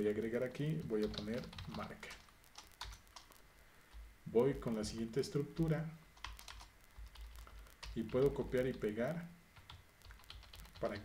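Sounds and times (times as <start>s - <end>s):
computer keyboard keystrokes: 0.8s - 3.3s, 6.2s - 8.8s, 9.6s - 11.0s.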